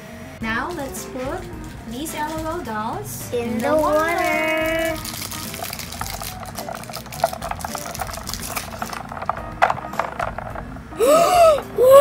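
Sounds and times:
ice clicking and plinking: 0:03.4 - 0:11.2.

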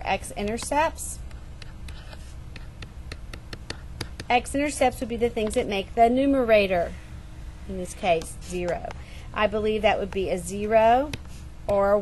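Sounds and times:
stylus scratching on screen: 0:00.0 - 0:05.8, 0:07.7 - 0:12.0
low steady hum: 0:00.0 - 0:12.0.

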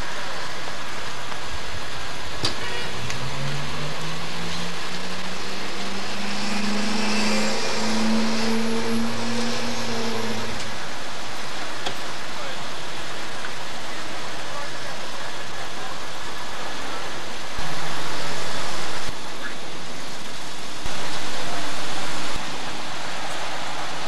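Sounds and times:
outdoor hiss: 0:00.0 - 0:24.0
vehicle engine accelerating: 0:02.8 - 0:11.8.

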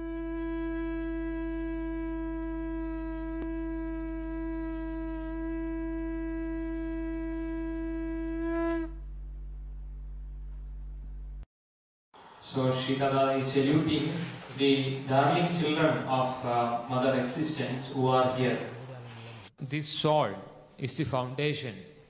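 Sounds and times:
wind instrument long note: 0:00.0 - 0:09.0
steady low drone: 0:08.8 - 0:11.4.

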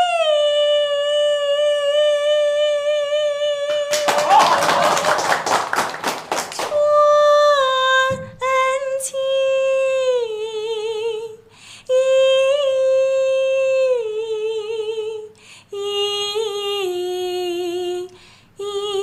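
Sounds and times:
woman singing opera unaccompanied: 0:00.0 - 0:03.9, 0:06.7 - 0:19.0
people clapping: 0:03.7 - 0:06.9.

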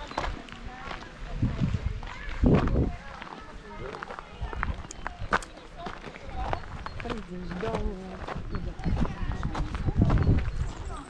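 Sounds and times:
footsteps: 0:00.0 - 0:11.0
indistinct voices: 0:00.0 - 0:11.0.

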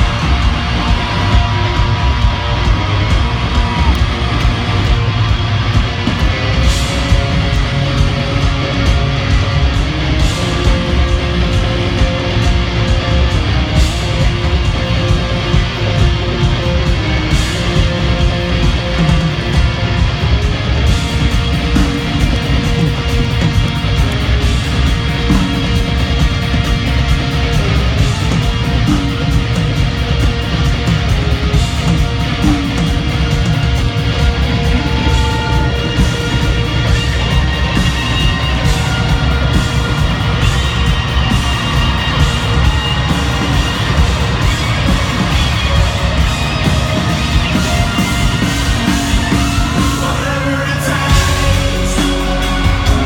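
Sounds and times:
deep bass swell: 0:00.0 - 0:19.0
live rock band playing: 0:00.0 - 0:53.0.

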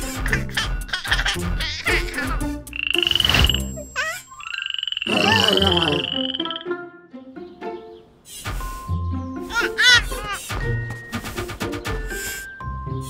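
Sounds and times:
music: 0:00.0 - 0:04.0, 0:05.3 - 0:13.0
cartoon frog croaking trills: 0:01.0 - 0:06.8
falling whistle: 0:04.3 - 0:06.7.

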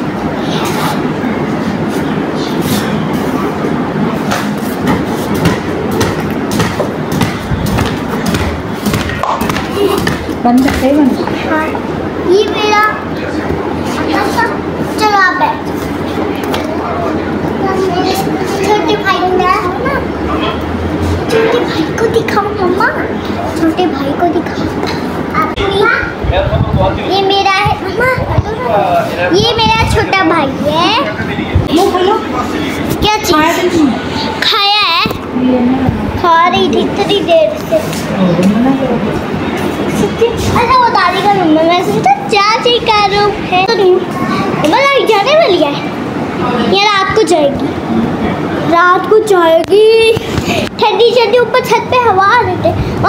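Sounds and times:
young children talking: 0:00.0 - 0:04.2, 0:09.4 - 0:53.0
steady low hum: 0:00.0 - 0:53.0.

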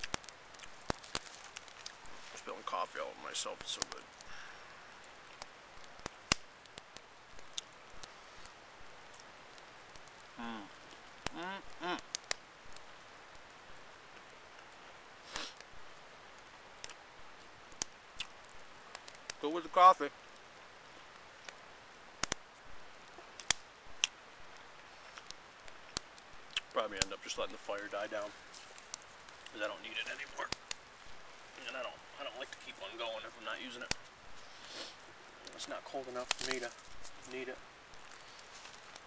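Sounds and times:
campfire ticks and pops: 0:00.0 - 0:39.0
faint steady hiss: 0:00.0 - 0:39.0
drizzle hiss: 0:15.2 - 0:15.6, 0:32.9 - 0:35.1.

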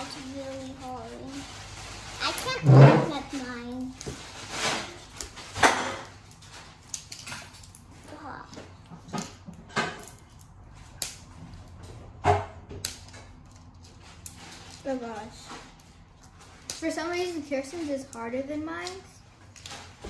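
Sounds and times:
plastic crinkling: 0:00.0 - 0:11.8, 0:13.0 - 0:20.0.

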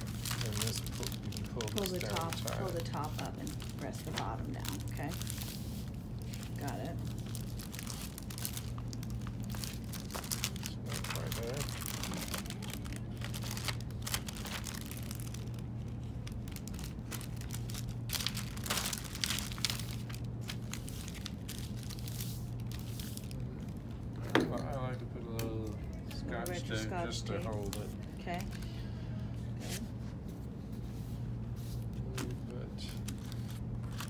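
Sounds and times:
plastic film crinkling: 0:00.0 - 0:24.9, 0:27.2 - 0:28.9, 0:31.6 - 0:34.0.

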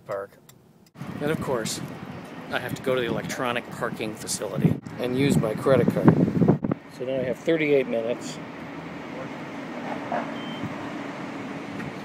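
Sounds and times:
street traffic hum: 0:00.0 - 0:12.0
faint high beep: 0:10.4 - 0:10.7.

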